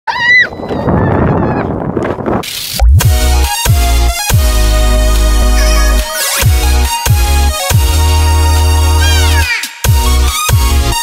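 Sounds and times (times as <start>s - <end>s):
child squealing: 0.1s - 1.7s, 5.5s - 6.5s, 9.0s - 9.7s.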